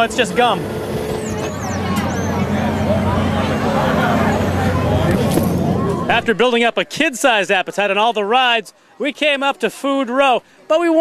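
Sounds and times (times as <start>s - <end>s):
low mechanical hum: 0.0s - 6.8s
crowd chatter: 0.0s - 11.0s.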